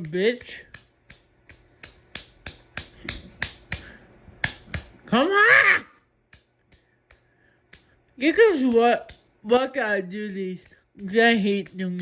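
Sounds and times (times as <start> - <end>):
ceiling fan ticking: 0.0 - 5.2, 6.1 - 12.0.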